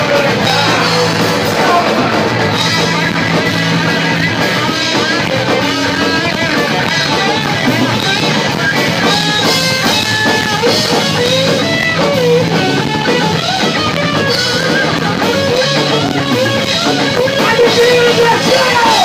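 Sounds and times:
electric guitar bending pitch: 0.0 - 19.0
punk rock band playing: 0.0 - 19.0.

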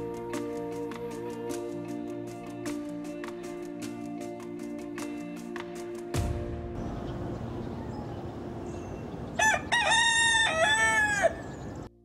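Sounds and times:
rooster crowing: 9.3 - 11.8.

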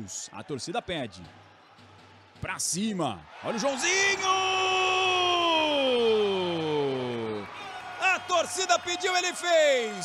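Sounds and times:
man's drawn-out celebratory cry: 3.5 - 10.0.

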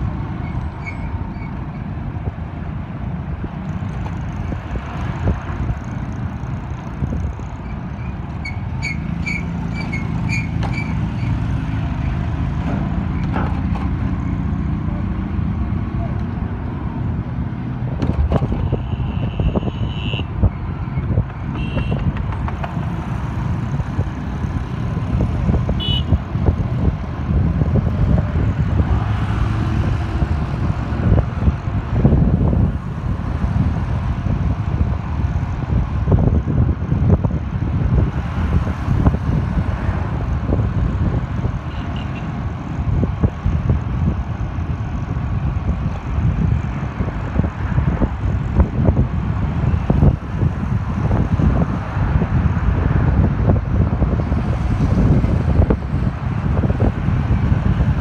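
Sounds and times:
traffic engine rumble: 0.0 - 58.0
wind buffeting microphone: 0.0 - 58.0.

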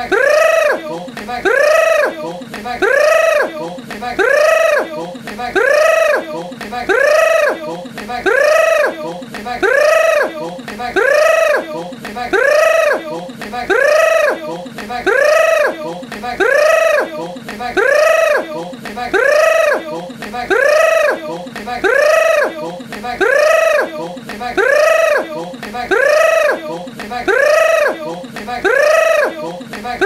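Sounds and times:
high-pitched vocal cry: 0.0 - 30.0.

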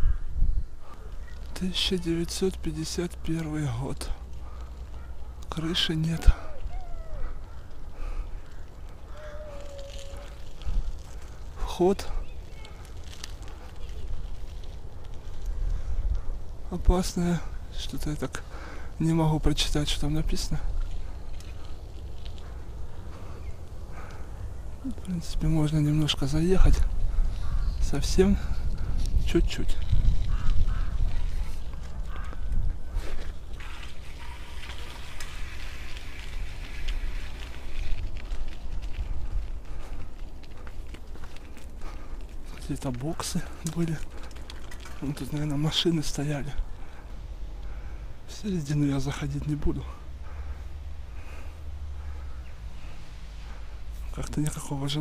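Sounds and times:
wind buffeting microphone: 0.0 - 1.5, 6.0 - 16.7, 19.6 - 45.4
bicycle rumbling over dirt path: 0.7 - 48.1
faint bird calls: 4.3 - 14.3, 27.1 - 27.9, 30.2 - 35.6, 50.1 - 53.8.

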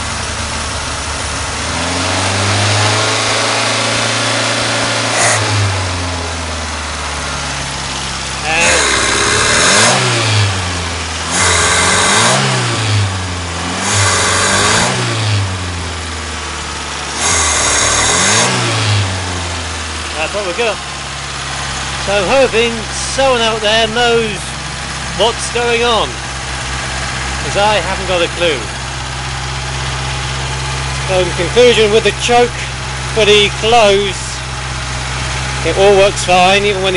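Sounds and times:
petrol engine idling and revving: 0.0 - 36.9.

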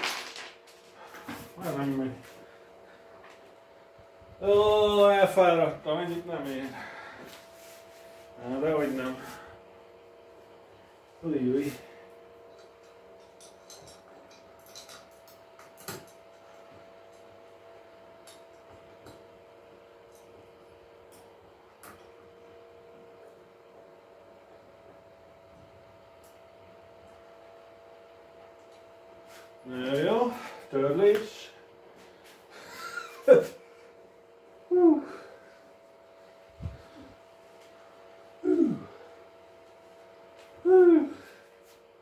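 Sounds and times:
faint steady hum: 0.0 - 42.0
man speaking: 1.6 - 2.3, 4.4 - 6.9, 8.4 - 9.4.

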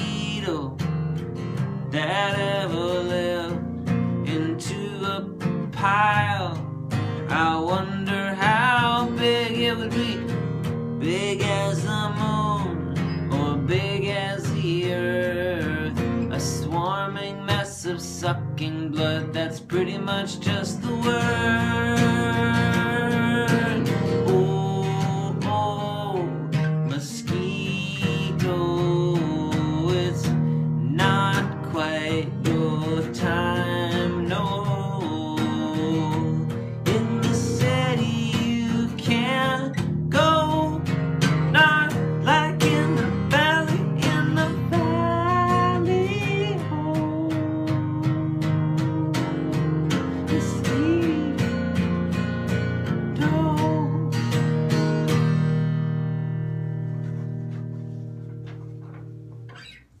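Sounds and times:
strummed guitar chords: 0.0 - 60.0.

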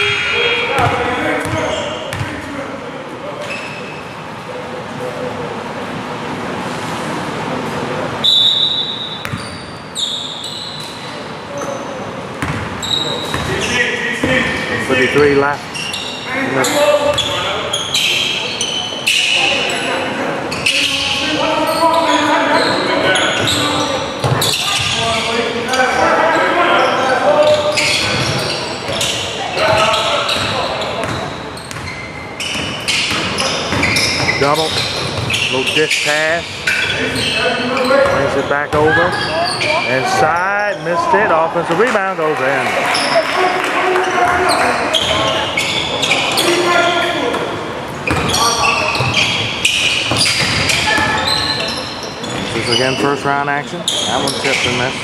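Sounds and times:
voices calling out echoing: 0.0 - 6.6, 7.3 - 55.0.

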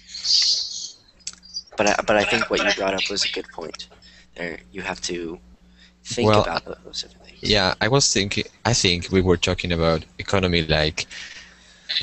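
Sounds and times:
man speaking: 1.8 - 5.4, 6.1 - 11.4.

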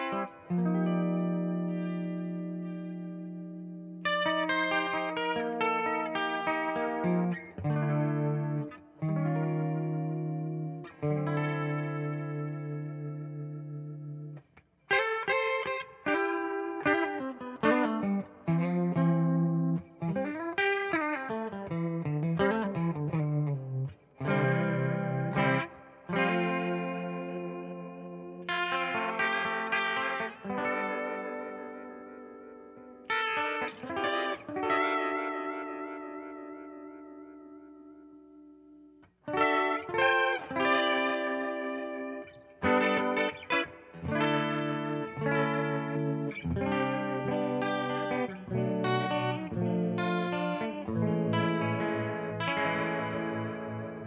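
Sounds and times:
clean electric guitar with flanger: 0.0 - 54.0.

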